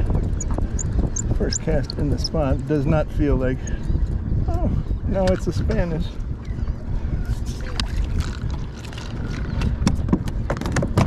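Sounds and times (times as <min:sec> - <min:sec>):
wind buffeting microphone: 0:00.0 - 0:11.0
waves lapping at kayak hull: 0:03.0 - 0:10.1.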